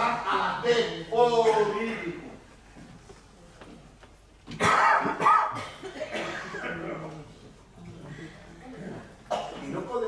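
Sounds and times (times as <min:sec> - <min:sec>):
person coughing: 0:04.6 - 0:07.0, 0:09.3 - 0:09.8.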